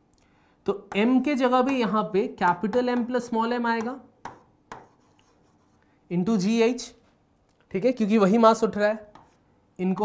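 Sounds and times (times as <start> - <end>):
marker writing on a board: 3.8 - 5.8, 9.0 - 9.5.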